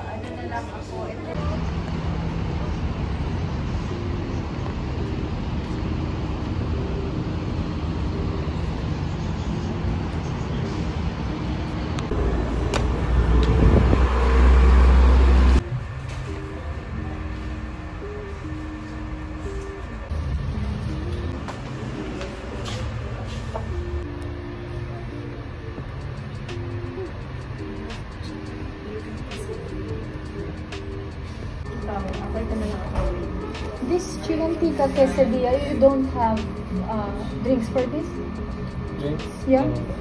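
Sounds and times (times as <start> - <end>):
road traffic noise: 0.0 - 40.0
steady low rumble: 1.2 - 40.0
vehicle passing with deep rumble: 7.6 - 16.0
indistinct background voices: 19.4 - 40.0.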